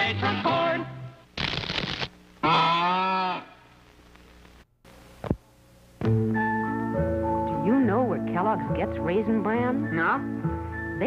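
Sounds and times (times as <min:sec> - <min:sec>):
cartoon moo call: 0:02.4 - 0:03.6.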